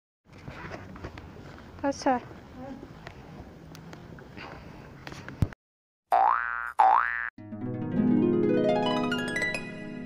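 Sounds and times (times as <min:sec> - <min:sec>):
cartoon boing sound effects: 0:06.1 - 0:07.3
held chord of intro music: 0:07.4 - 0:10.0.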